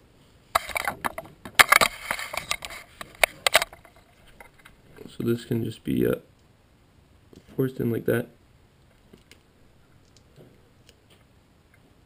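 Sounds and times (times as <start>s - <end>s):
rustles and sharp clicks: 0.5s - 5.1s.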